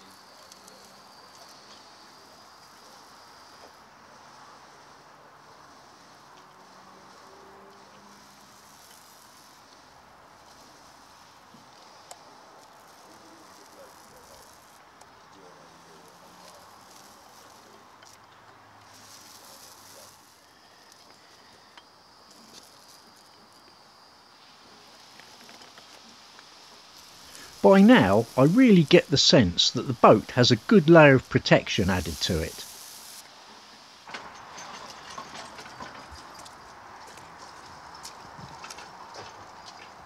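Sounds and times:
paint roller hissing: 0.0s - 34.3s.

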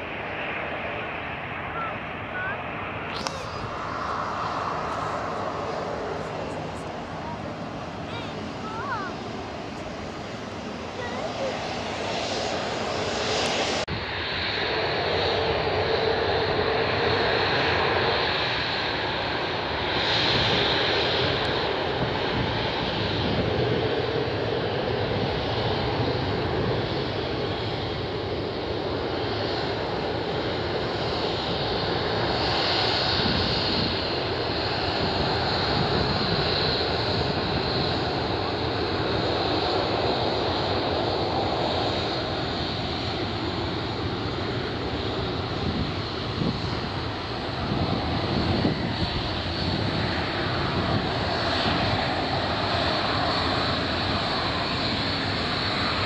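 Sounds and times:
jet engines with high whine: 0.0s - 56.0s.

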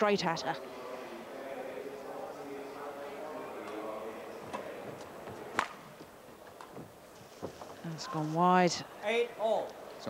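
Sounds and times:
racket hitting shuttlecock: 5.5s - 5.8s.

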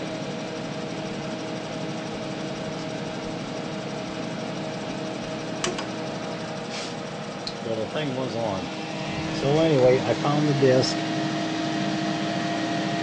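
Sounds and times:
computer fan and drive whir: 0.0s - 13.0s
sharp click: 5.6s - 5.9s.

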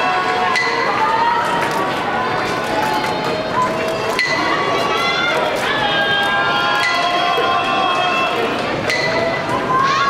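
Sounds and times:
crowd chatter: 0.0s - 10.0s
held calls from crowd: 0.0s - 10.0s.

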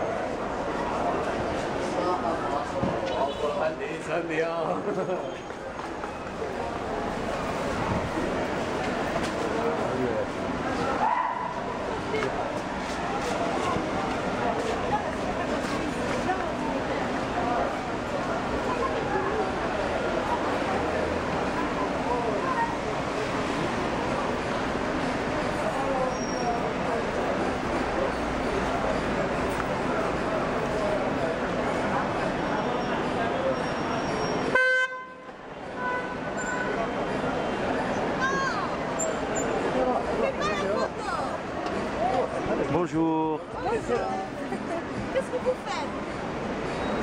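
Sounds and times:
street noise: 0.0s - 47.0s
voices of passers-by: 0.0s - 47.0s
car horn toot: 34.5s - 36.8s.

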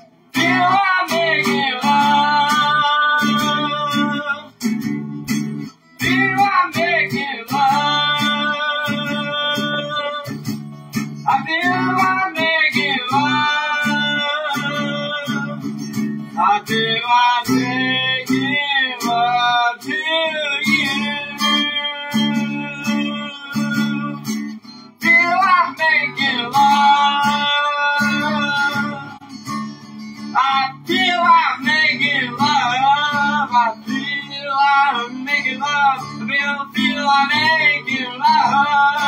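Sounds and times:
person singing: 0.0s - 4.9s, 5.7s - 29.5s, 30.2s - 39.0s
acoustic guitar strumming: 0.0s - 39.0s.

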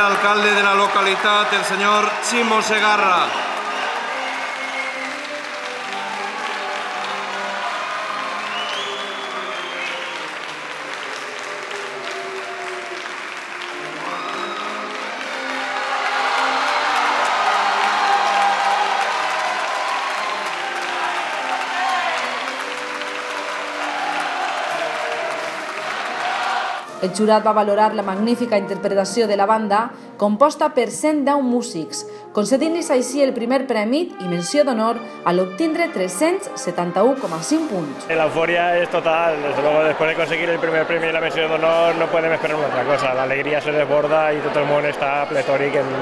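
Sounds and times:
audience applause: 0.0s - 26.9s, 38.1s - 46.0s
music playing: 0.0s - 46.0s.

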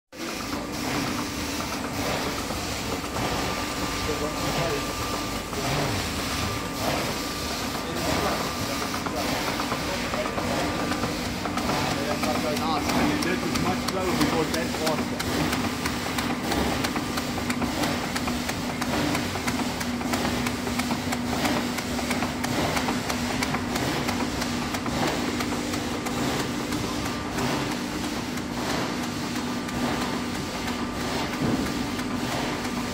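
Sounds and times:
machine humming: 0.2s - 32.9s
rapid irregular clicks: 8.4s - 32.9s.

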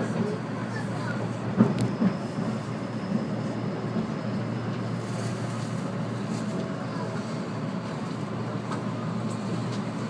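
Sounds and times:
train wheels clacking over track: 0.0s - 4.9s
train car low rumble: 0.0s - 10.0s.

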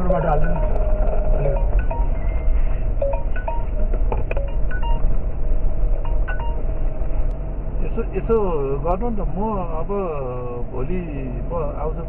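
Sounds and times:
jeep engine rumble: 0.0s - 12.0s.

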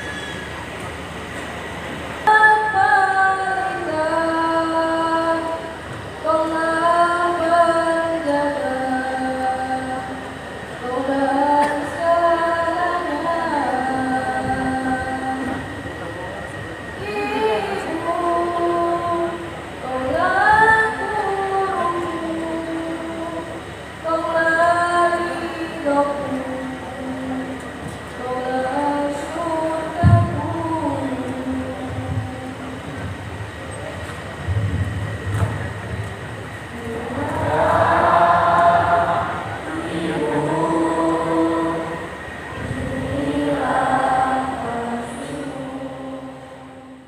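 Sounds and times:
choir singing long held notes: 2.2s - 33.0s, 36.6s - 47.0s.

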